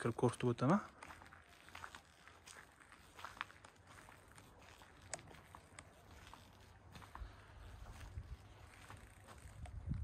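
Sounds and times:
footsteps on concrete: 0:00.0 - 0:10.0
wind rumble on microphone: 0:07.2 - 0:10.0.

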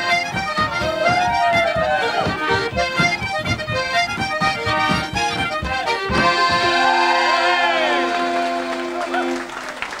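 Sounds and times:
sustained accordion chord: 0:00.0 - 0:09.6
crowd voices: 0:00.0 - 0:10.0
folk dance music: 0:00.0 - 0:10.0
applause: 0:07.8 - 0:10.0.

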